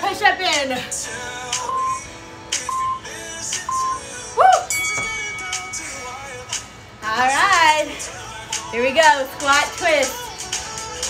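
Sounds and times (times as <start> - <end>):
background music: 0.0 - 11.0
timer countdown beeps: 1.7 - 2.1, 2.7 - 3.1, 3.7 - 4.0.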